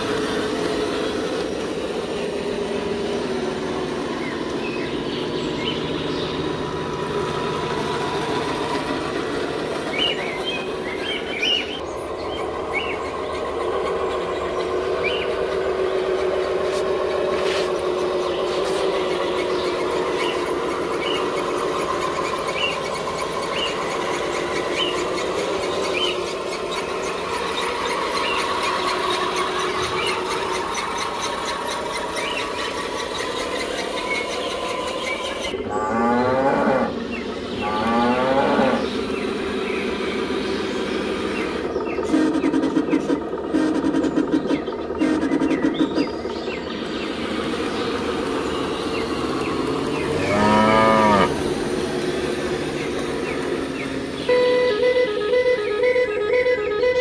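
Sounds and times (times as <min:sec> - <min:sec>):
mechanical running sound: 0:00.0 - 0:57.0
cattle mooing: 0:35.7 - 0:36.9, 0:37.6 - 0:38.8, 0:50.0 - 0:51.4.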